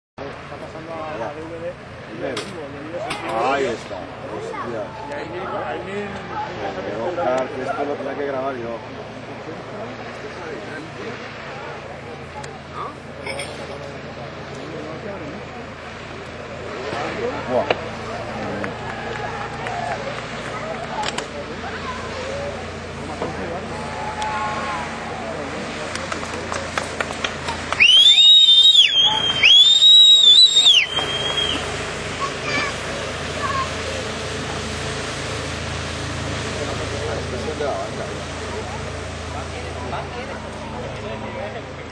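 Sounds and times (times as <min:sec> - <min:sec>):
distant boat engine droning: 0:00.2 - 0:41.9
faint voices: 0:00.2 - 0:41.9
outdoor background noise: 0:00.2 - 0:41.9
person whistling shrilly: 0:27.8 - 0:31.6.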